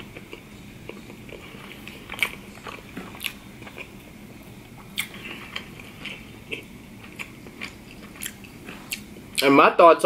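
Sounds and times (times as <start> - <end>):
chewing food: 0.0 - 9.5.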